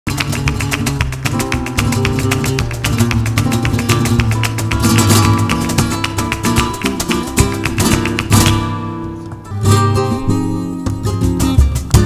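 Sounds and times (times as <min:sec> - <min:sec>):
flamenco guitar: 0:00.0 - 0:12.0
sharp percussive strikes: 0:00.1 - 0:12.0.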